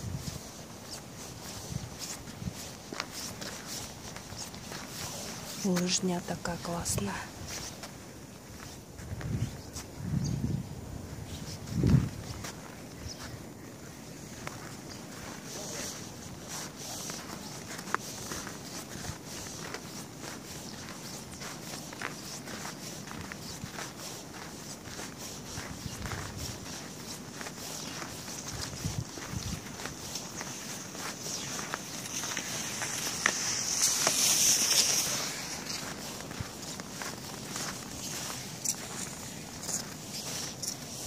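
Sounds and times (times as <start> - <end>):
footsteps on packed snow: 0.0 - 10.2, 10.8 - 41.0.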